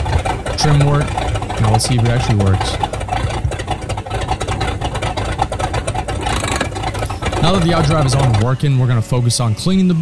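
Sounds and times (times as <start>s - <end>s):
boat engine running: 0.0s - 10.0s.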